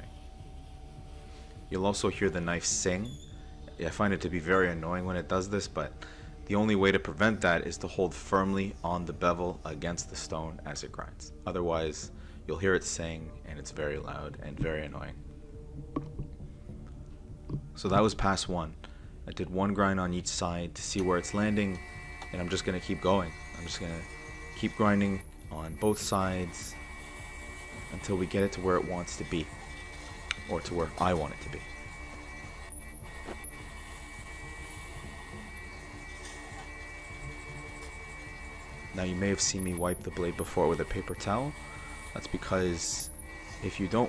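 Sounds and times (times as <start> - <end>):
sharpening machine humming: 0.0 - 3.8, 21.0 - 44.0
knife on grinding stone high tone: 21.1 - 44.0.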